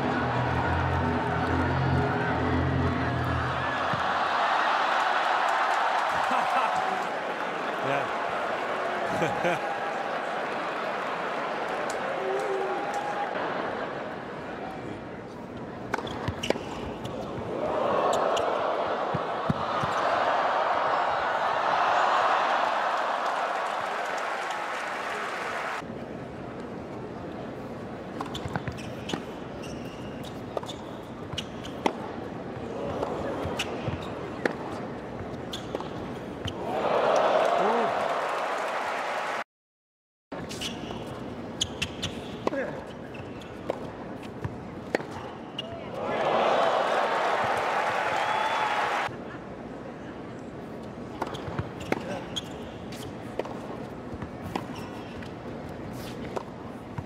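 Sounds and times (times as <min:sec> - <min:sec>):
crowd cheering: 0:00.0 - 0:14.9, 0:17.5 - 0:25.8, 0:36.5 - 0:39.5, 0:45.8 - 0:49.2.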